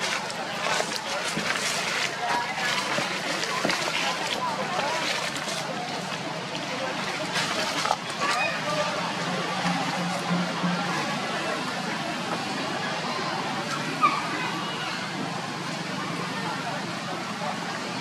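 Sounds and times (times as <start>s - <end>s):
distant people talking: 0.0s - 18.0s.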